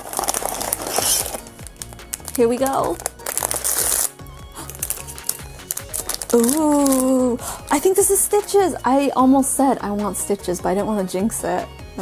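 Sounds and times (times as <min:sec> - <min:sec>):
foil wrapper crinkling: 0:00.0 - 0:07.4.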